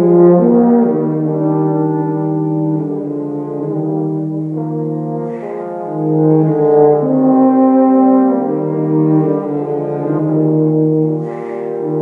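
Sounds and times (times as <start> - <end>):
brass trio playing held chords: 0.0 - 12.0.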